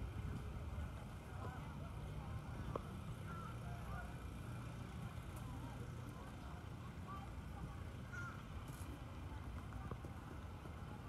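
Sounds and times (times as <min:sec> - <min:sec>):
faint distant voices: 0:00.0 - 0:11.0
low outdoor rumble: 0:00.0 - 0:11.0.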